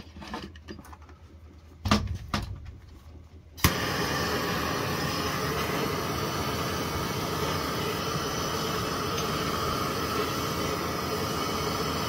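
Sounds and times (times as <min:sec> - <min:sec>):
gas torch lighting click: 0:03.6 - 0:12.0
torch flame hissing: 0:03.6 - 0:12.0.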